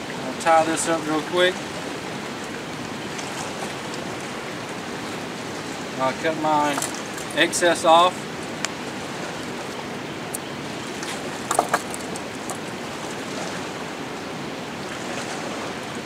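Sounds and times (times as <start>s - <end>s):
river water rushing: 0.0s - 16.0s.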